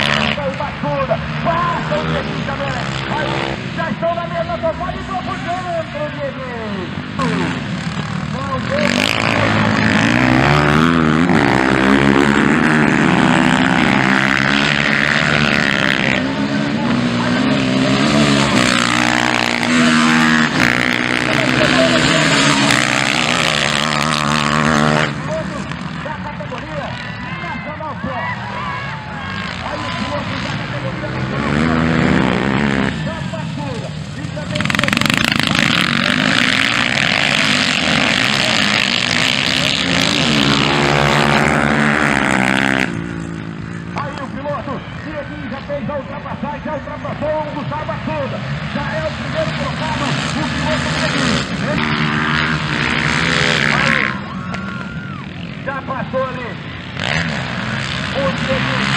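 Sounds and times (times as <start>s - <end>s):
dirt bike engines revving: 0.0s - 58.9s.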